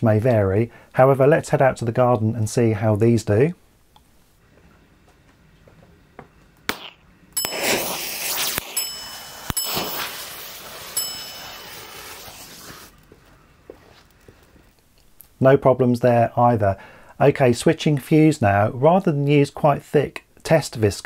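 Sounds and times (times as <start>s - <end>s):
electric matches popping: 6.7s - 13.0s
fuse burning with a hiss: 6.7s - 13.0s.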